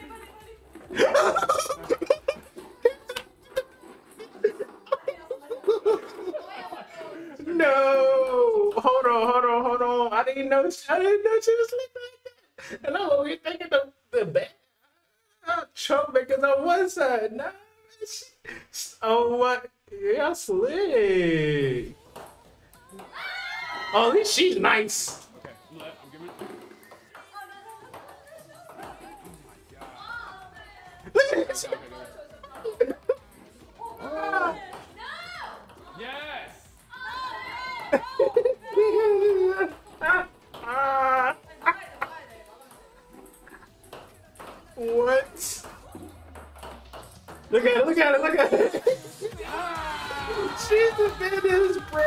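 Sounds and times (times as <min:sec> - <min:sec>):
faint background music: 0:00.0 - 0:52.0.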